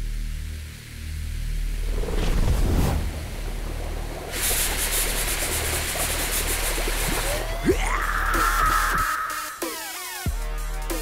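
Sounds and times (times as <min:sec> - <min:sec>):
low drone: 0:00.0 - 0:09.8
rising sweep: 0:01.7 - 0:05.3.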